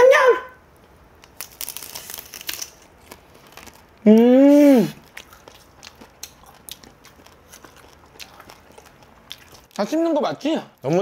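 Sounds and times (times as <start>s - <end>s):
crab shell crunching while chewed: 1.2s - 4.2s, 4.9s - 9.8s.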